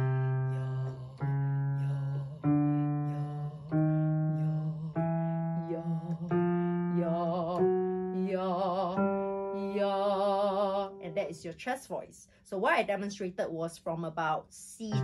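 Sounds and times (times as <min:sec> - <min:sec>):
woman singing sustained notes: 0:00.0 - 0:11.2.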